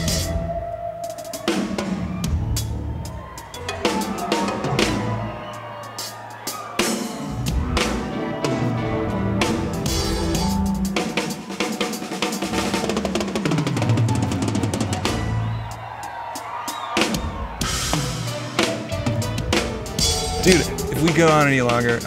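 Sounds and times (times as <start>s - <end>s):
drum kit playing rapidly: 0.0s - 22.0s.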